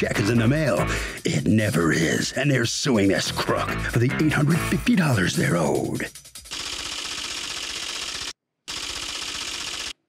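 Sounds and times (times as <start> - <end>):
typing sound effect clattering: 5.6 - 10.0.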